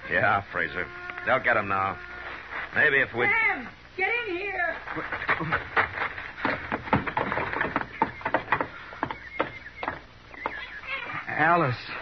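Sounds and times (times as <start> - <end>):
footsteps on wooden boards: 4.8 - 11.3.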